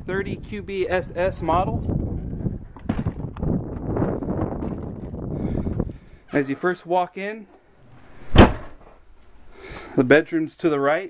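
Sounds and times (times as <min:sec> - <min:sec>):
low rumbling microphone noise: 0:00.0 - 0:06.3
sharp knocks: 0:08.3 - 0:08.8.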